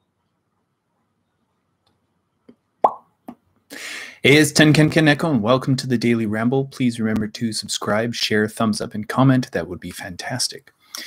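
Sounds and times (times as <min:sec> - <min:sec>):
lip pop: 0:02.5 - 0:03.1
quick breath in: 0:03.7 - 0:04.2.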